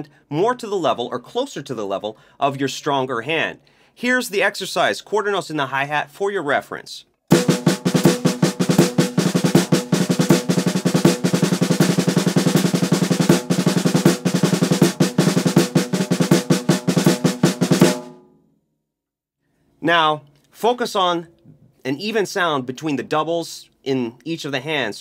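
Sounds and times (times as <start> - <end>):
snare drum rolls: 7.3 - 18.1.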